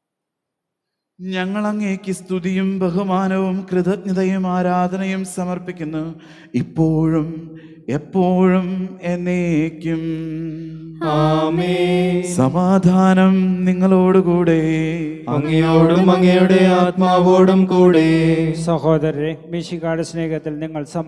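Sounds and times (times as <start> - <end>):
person chanting a prayer: 1.2 - 21.0.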